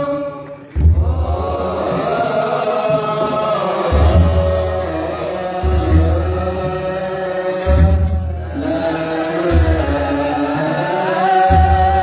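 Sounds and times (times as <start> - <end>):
men chanting a hymn: 0.0 - 12.0.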